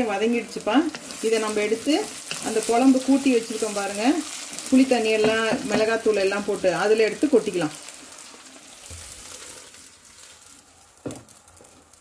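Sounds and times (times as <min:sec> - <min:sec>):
food sizzling in oil: 0:00.0 - 0:12.0.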